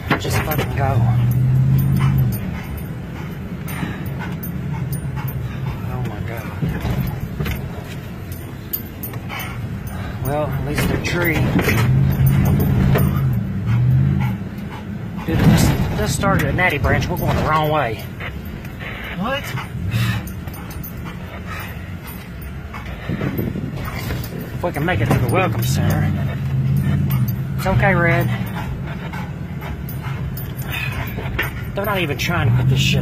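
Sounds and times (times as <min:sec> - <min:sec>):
car low hum: 0:00.0 - 0:33.0
dog whimpering and panting: 0:00.0 - 0:33.0.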